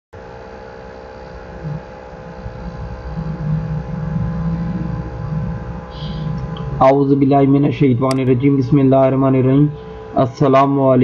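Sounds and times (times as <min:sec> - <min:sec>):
electrical hum with tones: 0:00.2 - 0:11.0
low rumble: 0:00.2 - 0:11.0.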